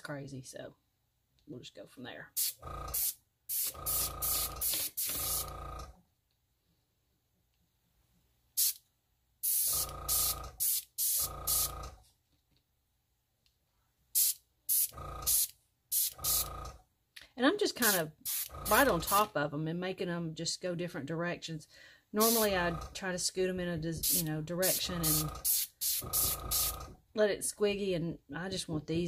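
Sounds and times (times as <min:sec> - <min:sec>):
airbrush air blasts: 0:02.4 - 0:05.7, 0:08.6 - 0:08.8, 0:09.4 - 0:11.9, 0:14.2 - 0:16.6, 0:17.8 - 0:19.3, 0:22.2 - 0:22.9, 0:24.0 - 0:26.9.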